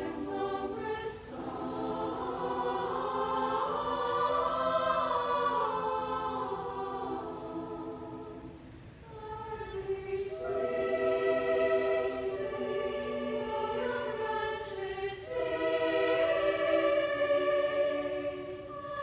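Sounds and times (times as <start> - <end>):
choir singing in a large hall: 0.0 - 19.0.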